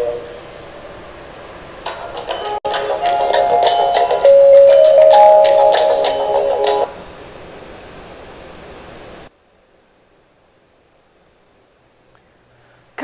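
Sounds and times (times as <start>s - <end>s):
closing music with held notes: 1.9s - 6.9s
faint hiss: 3.0s - 13.0s.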